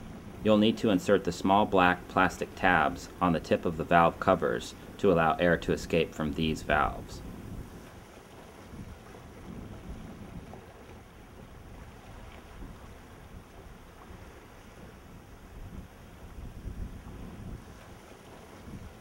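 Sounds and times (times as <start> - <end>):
wind buffeting microphone: 0.0 - 0.6, 4.0 - 19.0.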